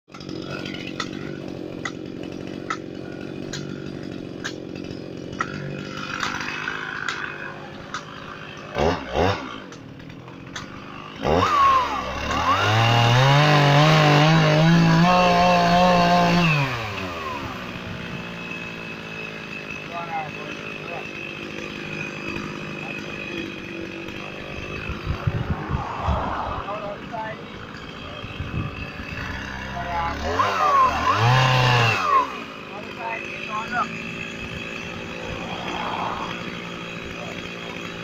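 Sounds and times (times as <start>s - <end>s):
chainsaw idling and revving: 0.1s - 38.0s.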